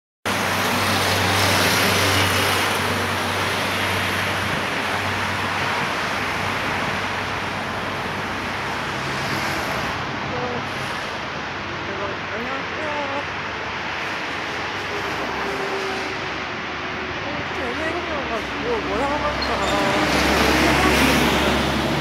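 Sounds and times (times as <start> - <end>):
cars on city road: 0.2 - 22.0.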